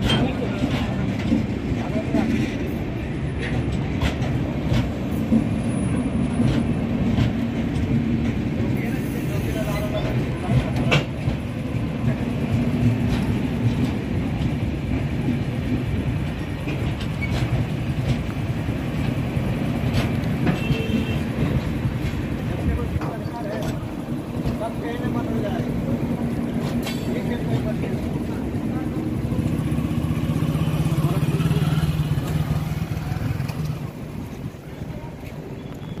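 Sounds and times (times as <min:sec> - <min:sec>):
wheel clacks over rail joints: 0:00.0 - 0:08.8, 0:09.6 - 0:35.8
train rolling rumble: 0:00.0 - 0:36.0.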